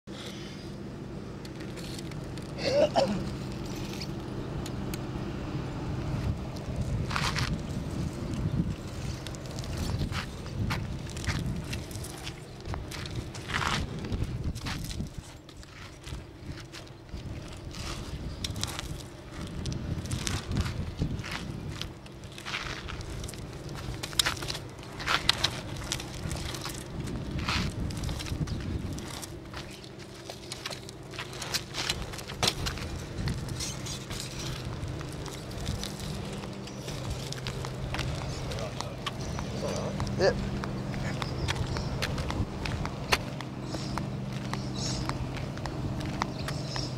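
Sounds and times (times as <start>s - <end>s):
low steady hum: 0.1s - 46.9s
bike tyres rolling and scuffing: 1.4s - 4.4s, 6.1s - 46.9s.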